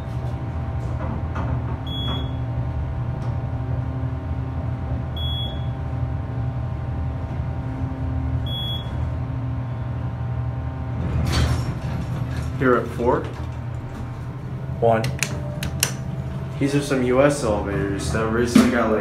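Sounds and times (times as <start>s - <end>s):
elevator low hum: 0.0s - 19.0s.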